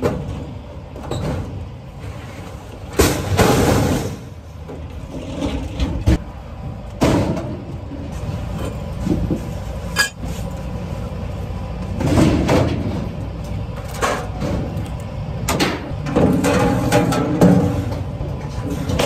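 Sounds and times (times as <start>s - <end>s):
scrap metal clanking: 9.0s - 10.6s, 15.6s - 19.0s.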